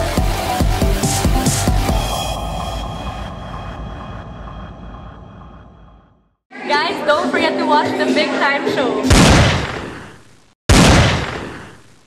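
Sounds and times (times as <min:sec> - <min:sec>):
electronic background music: 0:00.0 - 0:05.2, 0:06.6 - 0:09.2.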